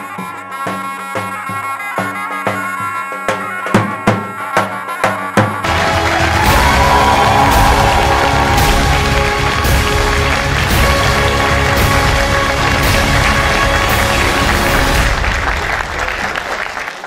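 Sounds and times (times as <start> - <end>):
music with heavy steady beat: 5.6 - 15.2
applause: 5.6 - 17.0.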